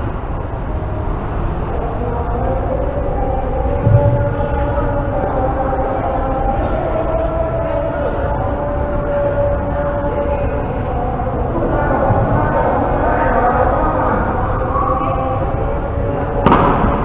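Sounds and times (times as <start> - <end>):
rumbling hall background noise: 0.0 - 17.0.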